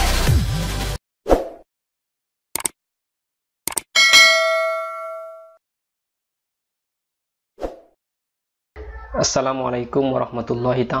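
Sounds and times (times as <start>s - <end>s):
double mouse click: 2.6s - 2.8s, 3.7s - 3.9s
notification bell ringing: 4.0s - 5.6s.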